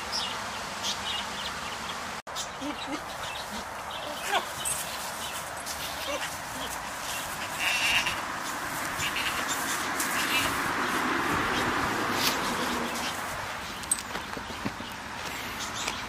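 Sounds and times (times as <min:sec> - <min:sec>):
goat calling: 0:02.6 - 0:04.6, 0:05.7 - 0:10.6.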